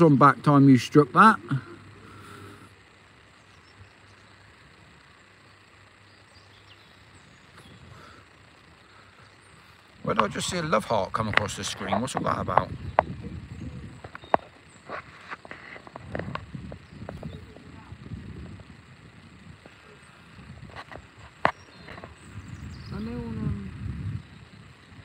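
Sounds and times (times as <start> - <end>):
low uneven rumbling: 0.0 - 25.0.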